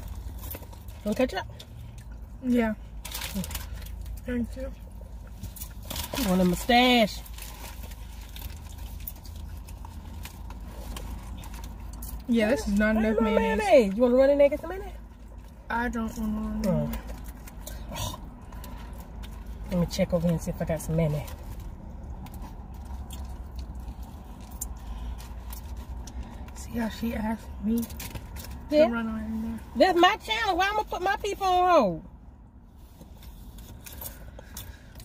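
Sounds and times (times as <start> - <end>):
food handling clicks and crinkles: 2.9 - 12.8.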